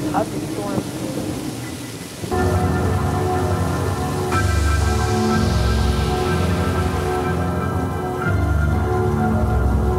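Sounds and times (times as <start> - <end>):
rain falling steadily: 0.0 - 9.9
low sustained music chord: 0.1 - 9.9.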